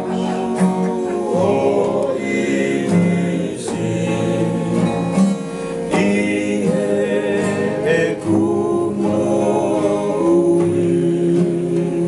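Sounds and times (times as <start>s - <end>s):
acoustic guitars and ukulele strumming: 0.0s - 12.0s
men singing a hymn in harmony: 0.0s - 12.0s.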